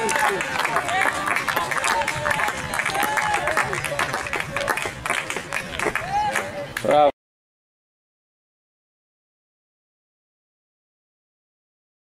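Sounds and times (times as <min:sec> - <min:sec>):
crowd clapping: 0:00.0 - 0:07.1.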